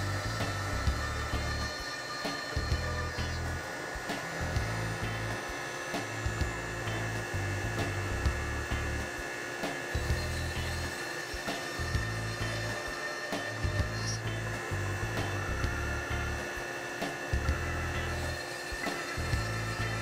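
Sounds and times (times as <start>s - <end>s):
background music with bass line: 0.0s - 1.7s, 2.6s - 3.6s, 4.2s - 9.2s, 9.8s - 11.0s, 11.7s - 12.8s, 13.5s - 18.4s, 19.0s - 20.0s
bit drilling into wood: 0.0s - 20.0s
cnc router spindle whine: 0.0s - 20.0s.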